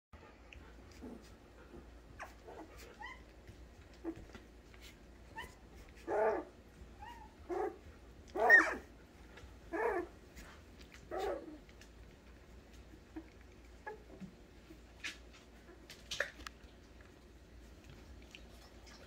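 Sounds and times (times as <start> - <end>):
puppies yipping and squeaking: 1.0 - 9.0, 9.7 - 11.8.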